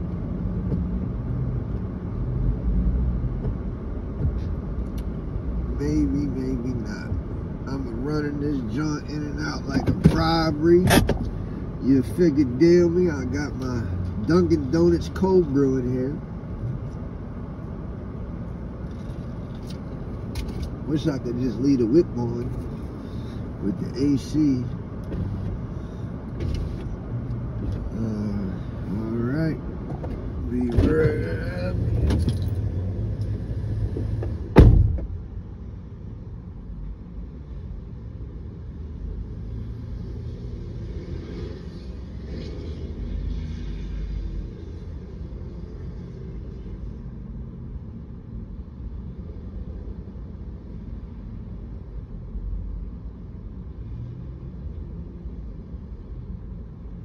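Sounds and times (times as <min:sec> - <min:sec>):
movement inside car: 0:00.0 - 0:57.0
traffic rumble outside: 0:00.0 - 0:57.0
car door shutting: 0:09.8 - 0:11.3, 0:26.3 - 0:27.0, 0:29.8 - 0:32.7, 0:33.8 - 0:35.2.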